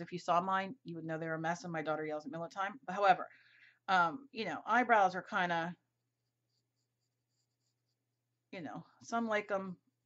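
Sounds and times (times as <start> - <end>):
pencil scratching on paper: 6.0 - 8.3.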